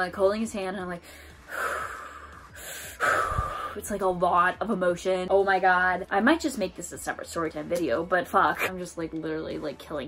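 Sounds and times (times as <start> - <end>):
woman breathing deeply: 1.0 - 3.8.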